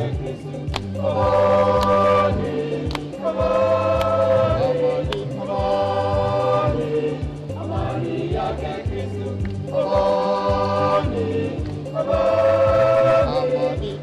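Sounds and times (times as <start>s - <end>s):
choir singing a hymn: 0.0s - 14.0s
low instrumental accompaniment: 0.0s - 14.0s.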